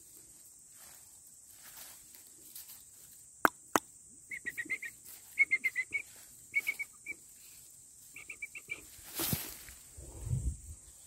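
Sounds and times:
bird chirping: 8.1s - 8.9s.

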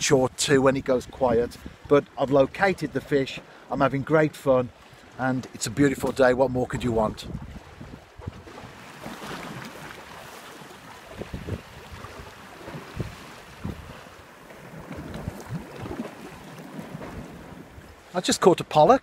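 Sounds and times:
sea water lapping against rocks: 4.8s - 18.2s
wind buffeting microphone: 6.3s - 8.7s, 11.0s - 18.0s.

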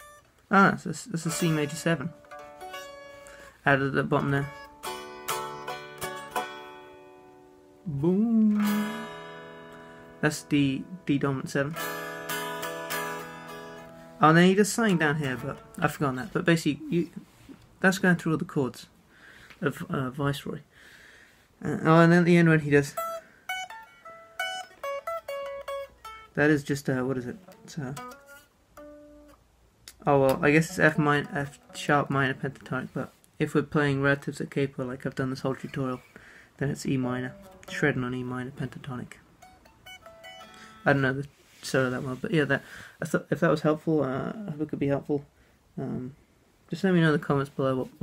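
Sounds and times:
electric guitar chord ringing: 1.3s - 3.6s, 4.2s - 7.8s, 8.6s - 15.9s, 27.4s - 29.4s, 37.2s - 40.9s
plucked electric guitar note: 8.4s - 10.2s.

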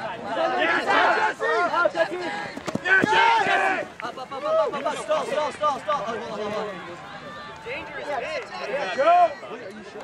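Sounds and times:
people shouting: 0.0s - 6.0s.

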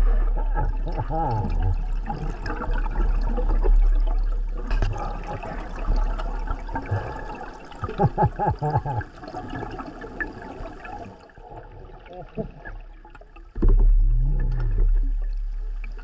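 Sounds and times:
steady low rumble: 0.0s - 7.1s
underwater air bubbles gurgling: 0.0s - 16.0s.

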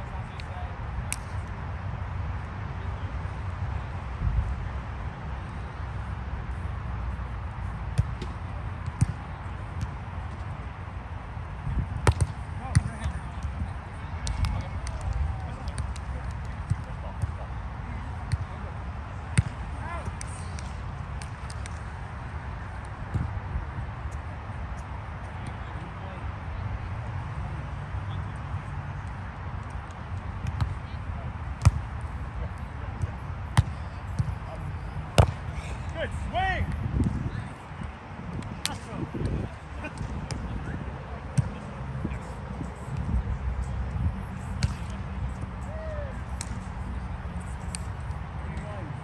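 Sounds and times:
ball hit: 12.0s - 13.0s, 35.1s - 35.4s
volleyball slaps: 12.0s - 13.1s, 38.4s - 40.5s, 44.5s - 45.0s
hand slapping volleyball: 14.2s - 17.4s, 19.4s - 21.8s, 37.8s - 40.5s, 46.3s - 46.7s.

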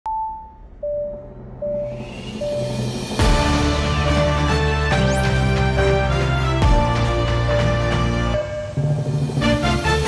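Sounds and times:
electronic beeps: 0.1s - 2.9s
low synth drone: 0.3s - 9.9s.

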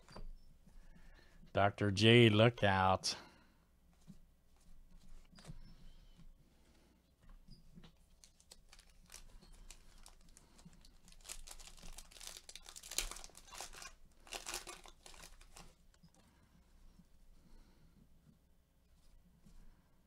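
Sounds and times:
foil wrapper crinkling and tearing: 8.1s - 15.9s.

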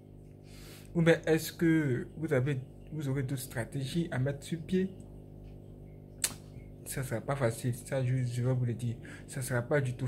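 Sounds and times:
low steady hum: 0.0s - 10.0s
sharp click: 6.2s - 6.6s.

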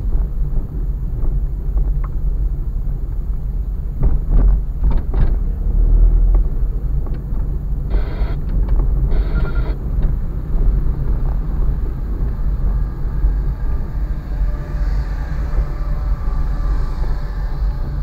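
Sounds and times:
car rumbling over rough road: 0.0s - 18.0s.

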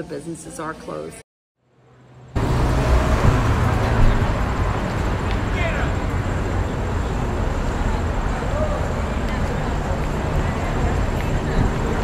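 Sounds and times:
passing cars and bus rumble: 1.6s - 12.0s.

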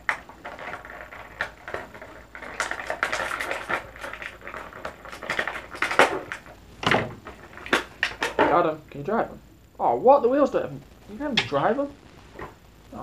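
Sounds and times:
plastic packaging crackling: 0.0s - 9.0s.

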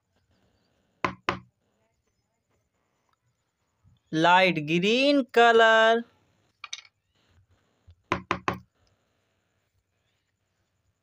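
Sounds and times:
plastic jar knocking on table: 1.1s - 1.5s, 8.1s - 8.6s.

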